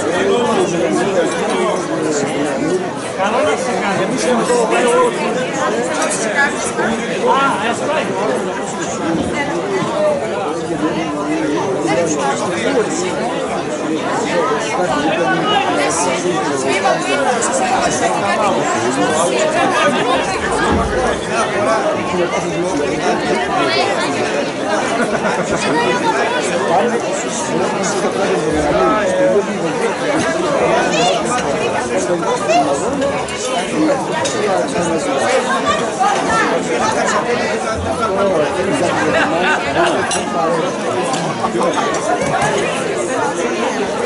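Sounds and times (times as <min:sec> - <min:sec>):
crowd of diners chattering: 0:00.0 - 0:44.0.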